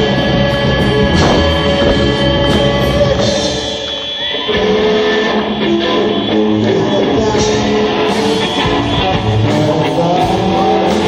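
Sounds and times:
electric guitar melody: 0.0 - 11.0
rock band playing live: 0.0 - 11.0.

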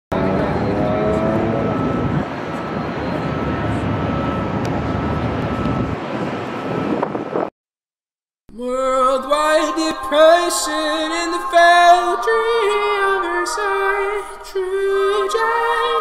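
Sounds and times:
vehicle traffic rumbling: 0.1 - 7.5.

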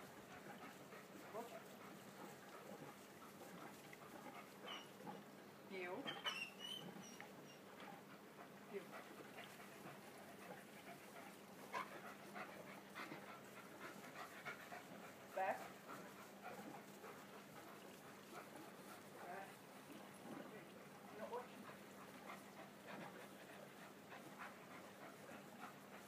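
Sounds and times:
dog whining: 6.1 - 7.6.

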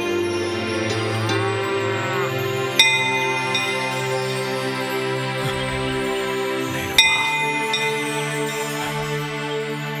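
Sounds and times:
background music: 0.0 - 10.0
bell ringing: 2.6 - 9.6.

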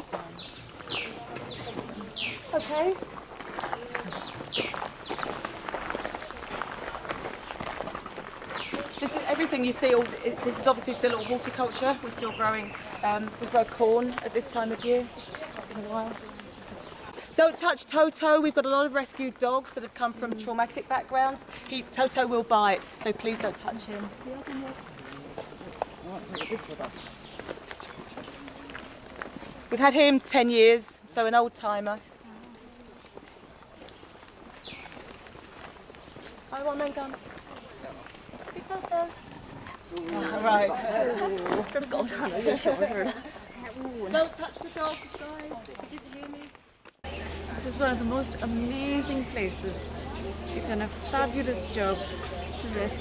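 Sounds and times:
people talking: 0.0 - 3.0, 8.7 - 25.2, 29.7 - 32.4, 36.5 - 39.2, 39.9 - 46.5, 47.1 - 53.0
footsteps on paved path: 0.0 - 53.0.

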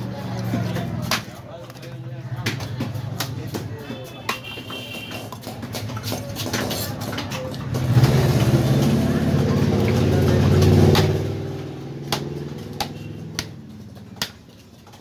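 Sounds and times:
vehicle engine running: 7.6 - 14.0.

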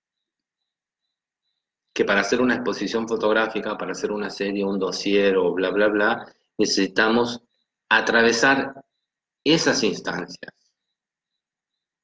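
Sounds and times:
man speaking: 2.0 - 10.7.

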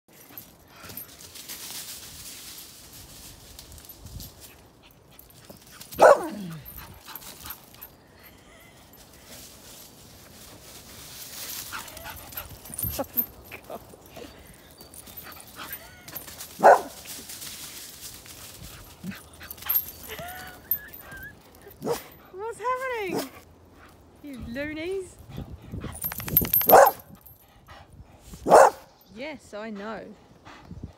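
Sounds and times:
dog barking: 6.0 - 6.4, 16.6 - 17.0, 26.7 - 27.1, 28.5 - 28.9
rattle of clicks: 26.0 - 26.9
dog yelping: 26.7 - 27.1.

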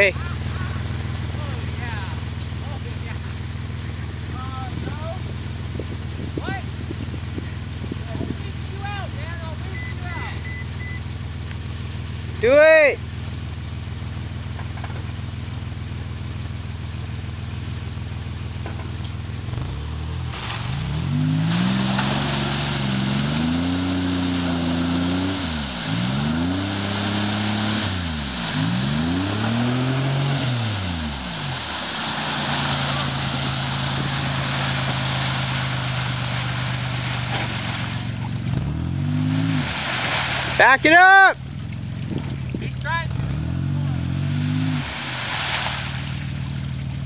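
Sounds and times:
engine revving: 19.4 - 41.2, 41.8 - 47.0
spraying mud and water: 19.4 - 47.0
tyres spinning in mud: 19.5 - 47.0.

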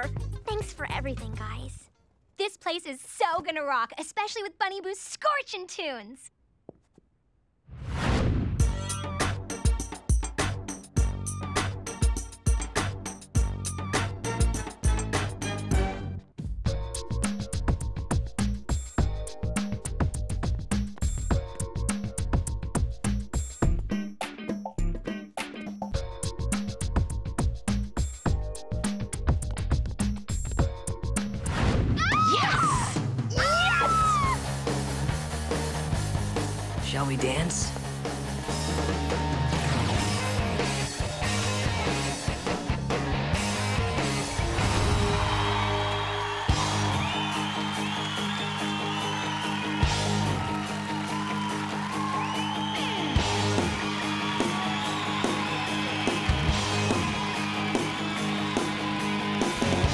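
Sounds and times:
rock music with electric guitar: 8.6 - 16.0, 33.4 - 36.9, 37.7 - 59.9.

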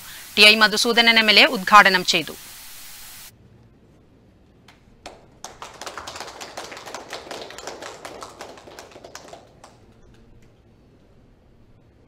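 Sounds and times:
people clapping: 4.7 - 10.7.

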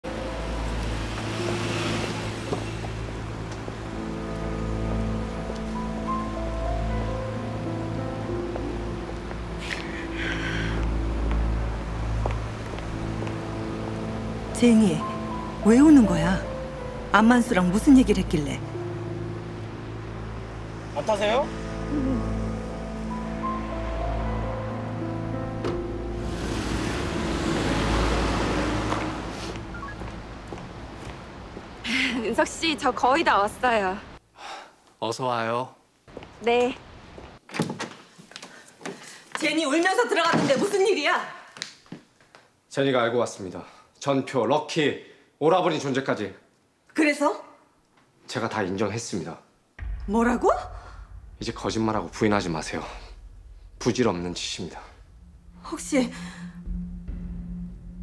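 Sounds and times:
slow sustained background music: 0.0 - 31.0, 49.8 - 58.0
passing car rush: 0.1 - 3.8, 19.4 - 31.9.

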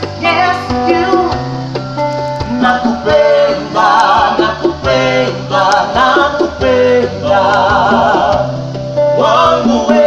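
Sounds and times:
acoustic guitar: 0.0 - 10.0
woman singing: 0.2 - 1.5.

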